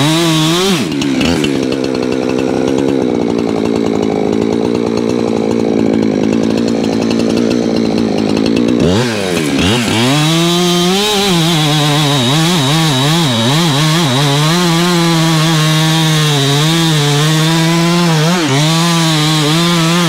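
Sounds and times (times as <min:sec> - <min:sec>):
chainsaw cutting log: 0:00.0 - 0:20.0.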